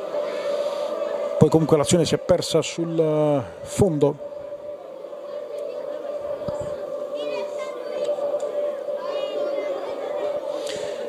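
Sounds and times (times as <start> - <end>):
faint distant voices: 0.0 - 11.0
steady hum: 0.0 - 11.0.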